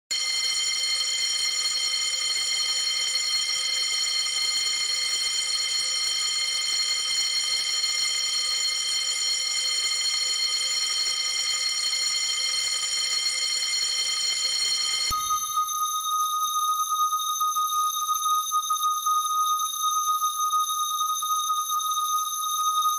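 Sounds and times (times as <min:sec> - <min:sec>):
alarm bell tone: 0:00.1 - 0:22.9.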